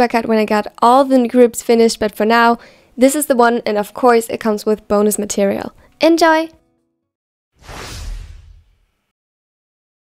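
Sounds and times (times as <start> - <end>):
whoosh transition effect: 7.6 - 9.1.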